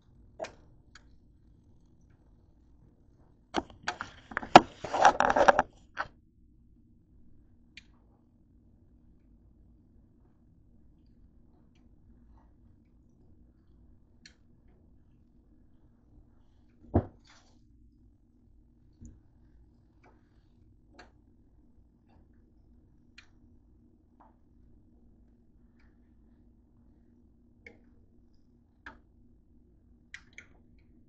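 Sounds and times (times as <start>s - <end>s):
hand knocking camera: 3.6s - 5.7s.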